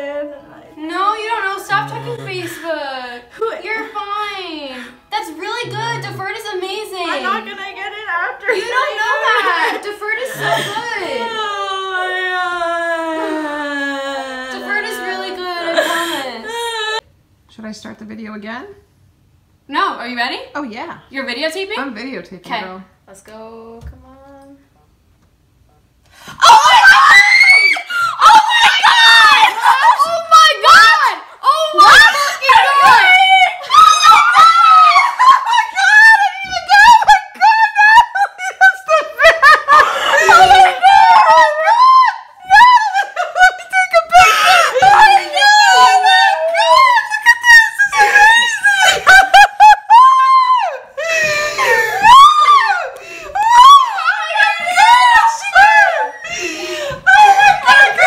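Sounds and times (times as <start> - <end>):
woman screaming with joy: 26.4 - 31.1, 31.8 - 38.3, 39.7 - 56.3.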